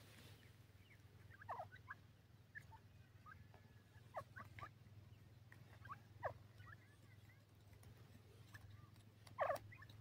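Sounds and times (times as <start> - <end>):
birds chirping: 0.0 - 10.0.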